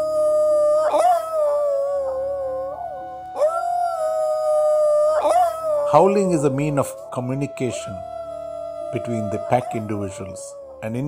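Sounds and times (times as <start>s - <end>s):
soft background music: 0.0s - 11.0s
wolf howling: 0.0s - 11.0s.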